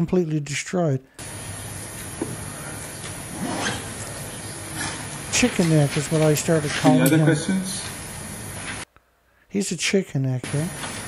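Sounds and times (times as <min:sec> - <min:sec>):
recording hiss and room noise: 0:00.0 - 0:11.0.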